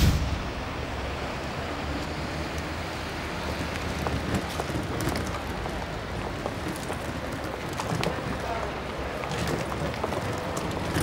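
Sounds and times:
loud whoosh: 0.0 - 2.0
traffic hiss: 0.0 - 7.6.

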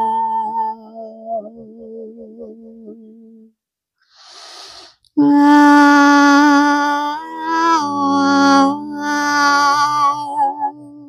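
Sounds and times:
woman humming low note: 5.2 - 11.0.

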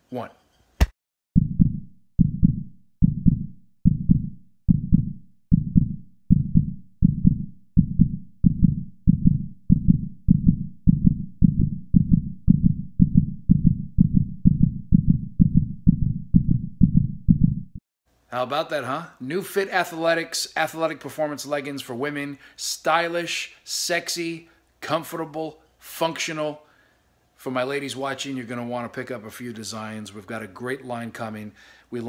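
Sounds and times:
deep heartbeat-like pulse: 1.4 - 17.8.

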